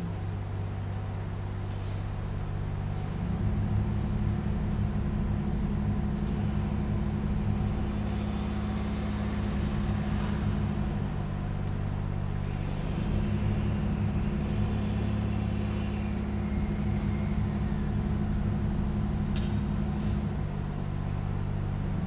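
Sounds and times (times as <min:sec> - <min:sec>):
accordion droning chords: 0:03.2 - 0:22.0.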